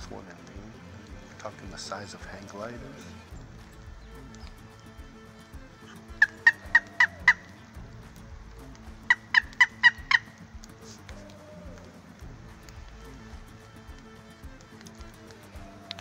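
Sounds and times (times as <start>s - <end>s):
turkey call yelps: 5.8s - 7.8s, 8.9s - 12.2s, 15.5s - 16.0s.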